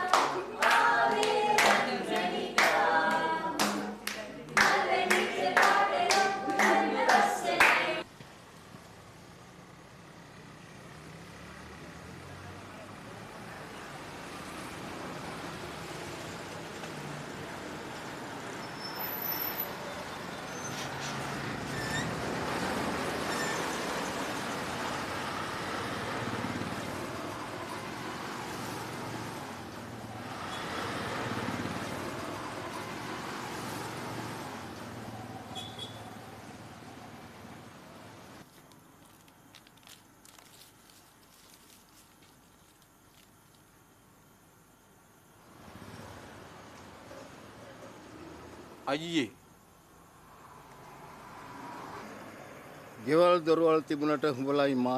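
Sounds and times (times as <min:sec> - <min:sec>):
group clapping in rhythm: 0:00.0 - 0:08.1
people singing: 0:00.0 - 0:08.1.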